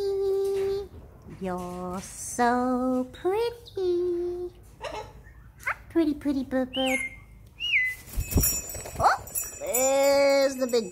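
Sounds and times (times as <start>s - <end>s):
parrot whistling: 6.8s - 8.0s.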